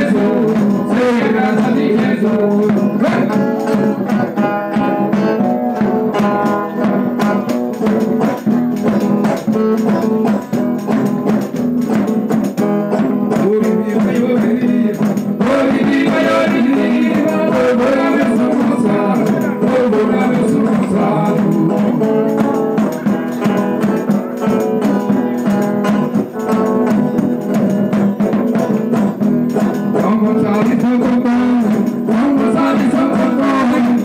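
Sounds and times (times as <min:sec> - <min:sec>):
people singing: 0:00.0 - 0:04.4, 0:13.4 - 0:22.3, 0:32.1 - 0:34.0
steady percussive beat: 0:00.0 - 0:34.0
strummed string instruments: 0:00.0 - 0:34.0.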